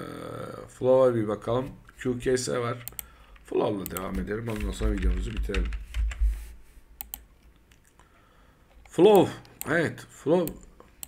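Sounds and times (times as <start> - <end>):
computer keyboard typing: 3.8 - 6.3.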